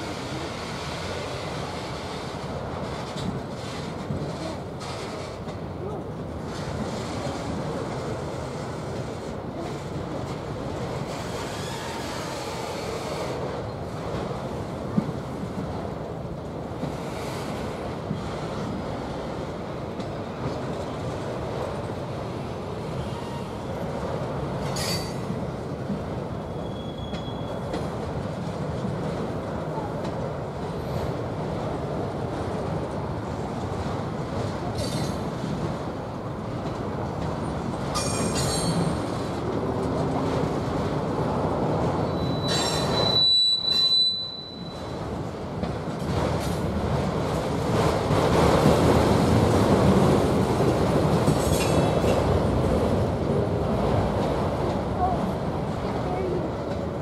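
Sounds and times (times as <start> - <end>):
train wheels rumbling on rail: 0.0 - 57.0
high-pitched wheel squeals: 26.5 - 27.6, 42.0 - 44.9.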